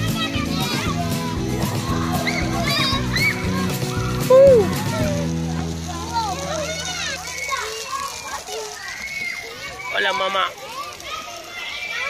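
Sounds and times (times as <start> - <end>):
children calling and shouting: 0.0 - 12.0.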